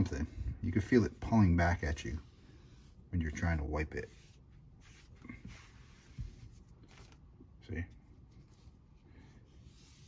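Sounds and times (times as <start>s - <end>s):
sponge rubbing on paper: 0.0s - 6.8s, 8.4s - 10.0s.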